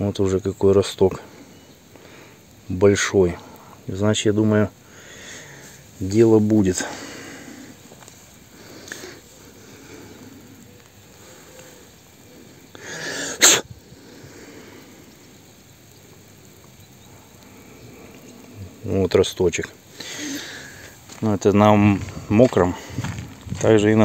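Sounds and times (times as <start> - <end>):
person sneezing: 12.9 - 13.7.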